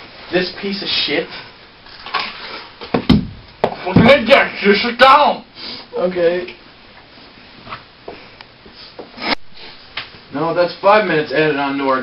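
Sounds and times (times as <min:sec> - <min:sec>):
knocks on wood: 0:03.0 - 0:04.2.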